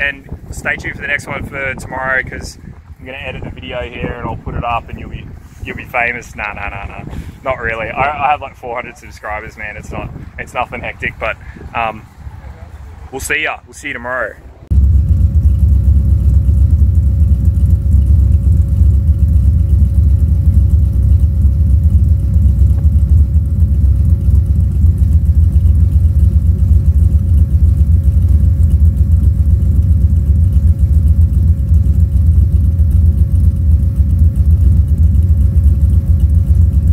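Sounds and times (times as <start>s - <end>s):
car engine idling: 0.0s - 36.9s.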